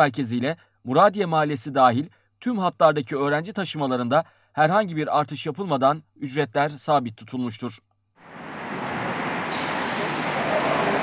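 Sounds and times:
traffic noise: 8.2s - 11.0s
high hiss: 8.3s - 11.0s
bus diesel engine idling: 8.4s - 11.0s.

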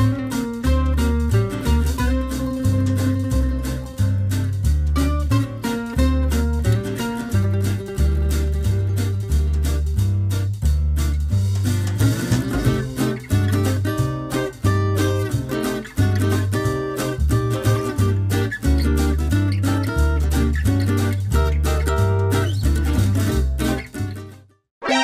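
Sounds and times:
bouncy bass line: 0.0s - 24.4s
plucked acoustic guitar: 0.0s - 25.0s.

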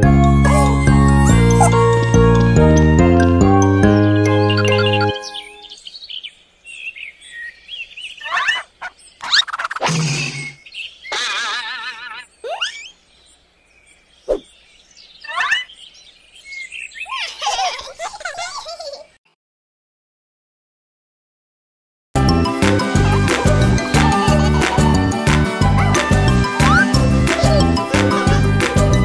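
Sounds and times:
chirping whistling birdsong: 3.9s - 9.5s, 10.3s - 11.2s, 12.2s - 17.1s.

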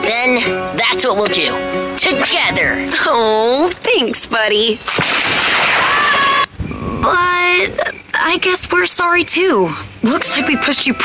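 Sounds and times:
cartoon crash of collapsing earth: 4.9s - 6.5s.

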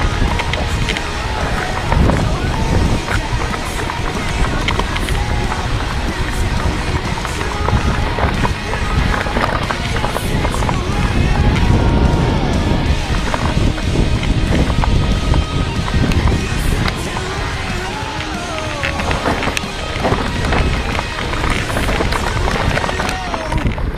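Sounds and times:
bike rattling over bumps: 0.0s - 23.9s
music playing: 0.0s - 23.9s
wind noise on microphone: 0.0s - 23.9s.

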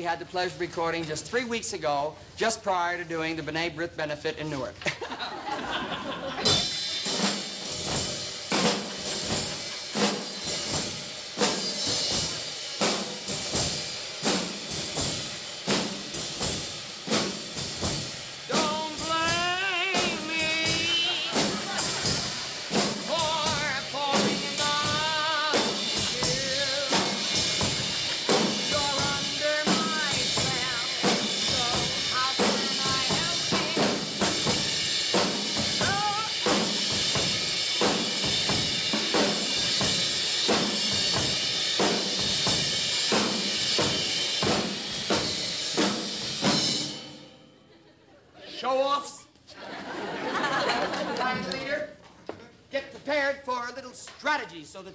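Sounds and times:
ensemble of drummers playing: 5.5s - 46.9s.

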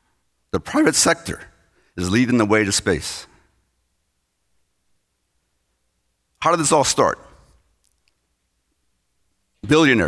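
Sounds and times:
man speaking: 0.5s - 3.5s, 6.4s - 7.6s, 9.6s - 10.0s.

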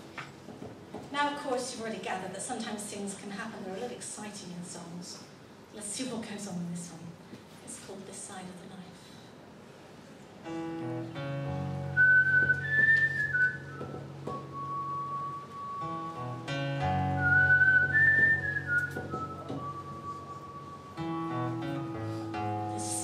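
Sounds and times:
whistled melody: 11.6s - 21.6s.

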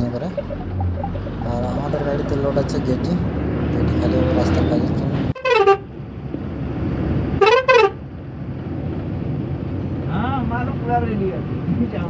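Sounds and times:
engine rumble: 0.0s - 12.0s
truck horn blasts: 5.4s - 5.9s, 7.4s - 8.0s.

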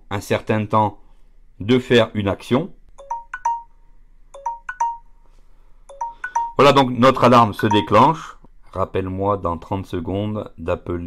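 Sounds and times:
smartphone timer alarm chimes: 3.0s - 5.2s, 5.9s - 6.8s, 7.6s - 8.1s.

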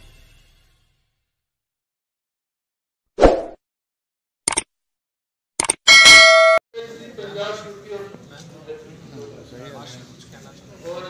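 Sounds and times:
sharp mouse clicks: 4.5s - 4.7s, 5.6s - 5.8s
bright bell ding: 5.9s - 6.6s.

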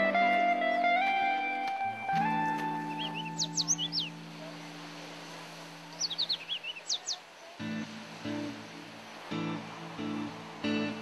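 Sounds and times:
bird singing high notes: 2.8s - 4.2s, 5.9s - 7.2s.

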